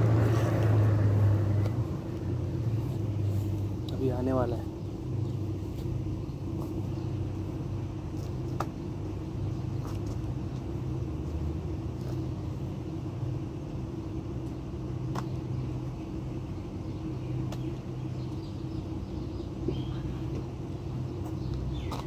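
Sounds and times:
vehicle engine idling: 0.0s - 22.0s.

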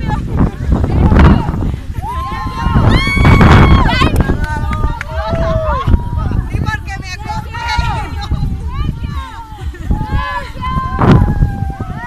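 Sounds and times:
children and adults talking: 0.0s - 12.0s
steady low rumble: 0.0s - 12.0s.

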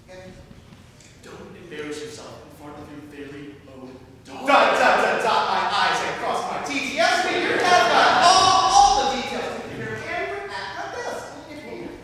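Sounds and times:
actors speaking in echoing hall: 0.0s - 12.0s.

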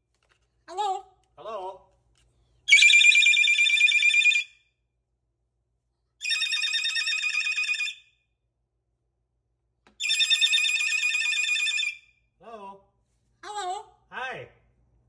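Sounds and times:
cockatoo imitating phone ringing: 2.7s - 4.6s, 6.2s - 8.0s, 10.0s - 12.0s.

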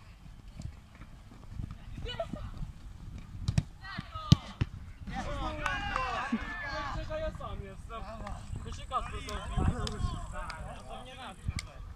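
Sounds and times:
football being kicked: 3.1s - 4.8s
players shouting: 5.1s - 7.2s.

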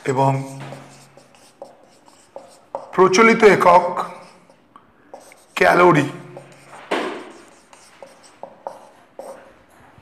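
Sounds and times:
marker pen writing on whiteboard: 0.0s - 9.8s.

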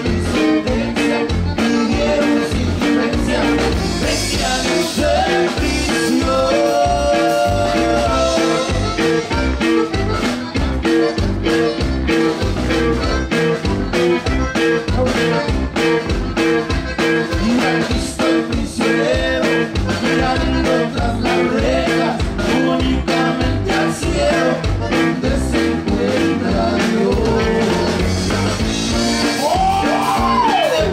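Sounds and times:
button accordion: 0.0s - 30.9s
drum kit beat: 0.0s - 30.9s
guitar: 0.0s - 30.9s.

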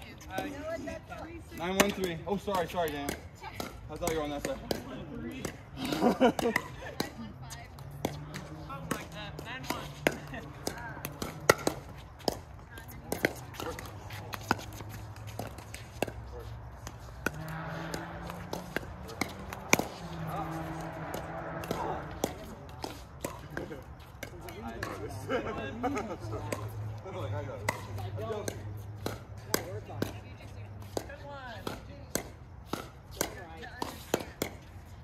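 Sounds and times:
ball bouncing on court: 0.1s - 34.9s.

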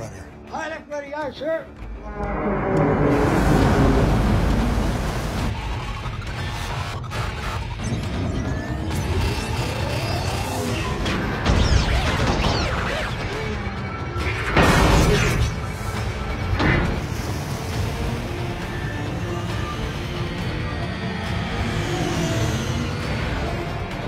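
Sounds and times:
dramatic film score: 0.0s - 24.0s
heavy low rumble: 1.9s - 5.7s
rising sweep: 1.9s - 5.8s
booming impacts: 2.0s - 5.6s.

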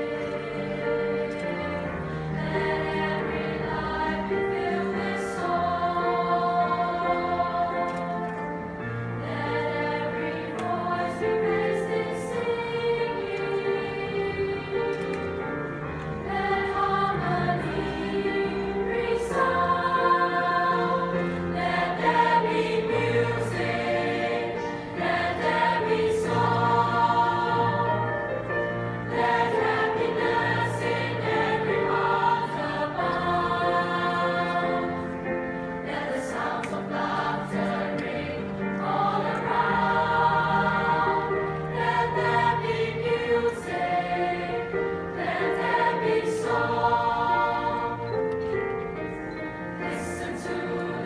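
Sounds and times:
mixed choir singing in harmony: 0.0s - 51.0s.

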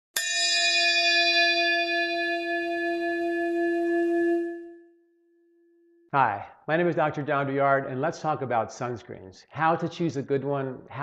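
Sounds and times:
bell-like chime ringing: 0.1s - 3.6s.

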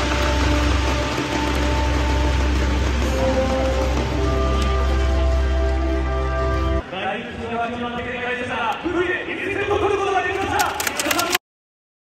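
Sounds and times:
break music: 0.0s - 6.8s
crowd murmur: 0.0s - 7.8s
man speaking over public address: 6.8s - 11.4s.

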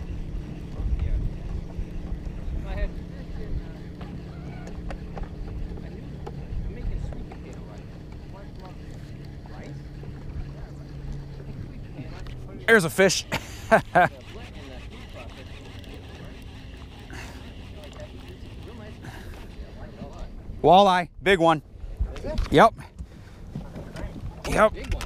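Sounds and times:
wind buffeting microphone: 0.0s - 12.6s.

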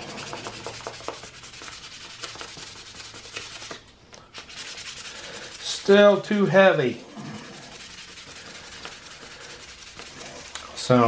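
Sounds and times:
sandpaper rubbing on plastic: 0.0s - 11.0s.

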